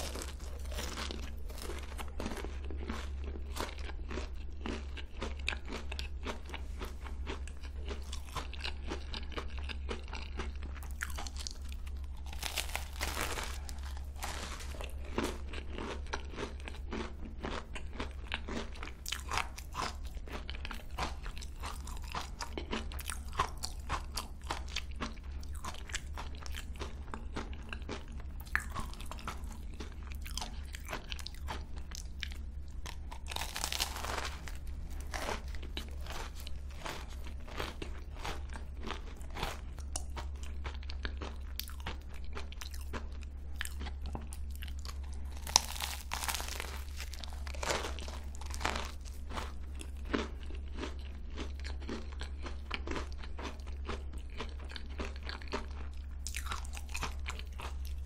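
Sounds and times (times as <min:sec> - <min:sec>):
chewing crunchy pastry: 0:00.0 - 0:58.0
steady low hum: 0:00.0 - 0:58.0.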